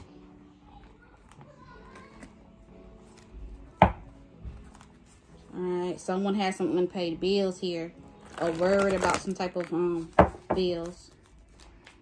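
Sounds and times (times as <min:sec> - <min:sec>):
faint background music: 0:00.0 - 0:12.0
deck of cards tapping table: 0:03.8 - 0:04.1, 0:10.1 - 0:10.7.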